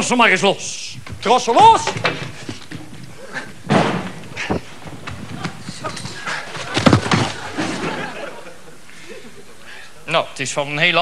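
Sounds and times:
dull thumps on a stage: 0:03.6 - 0:07.9.

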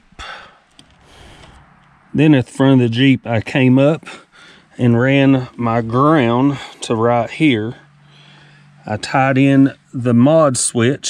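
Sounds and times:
man breathing in: 0:00.2 - 0:01.8, 0:04.1 - 0:04.8, 0:07.9 - 0:08.8.

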